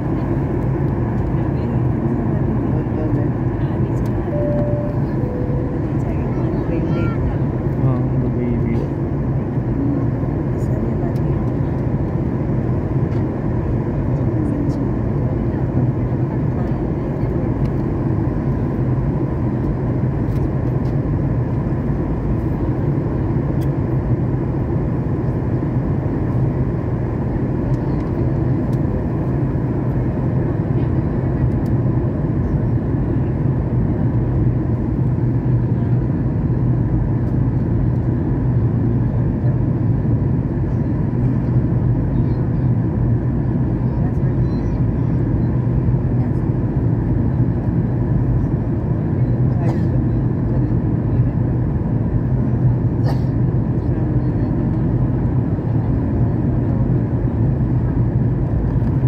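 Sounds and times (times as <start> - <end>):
low hum: 0.0 - 11.3
airliner engine roar: 0.0 - 59.0.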